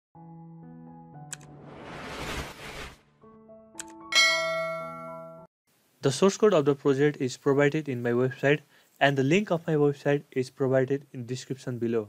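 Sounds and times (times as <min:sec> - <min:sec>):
bright bell chime: 0:04.1 - 0:05.5.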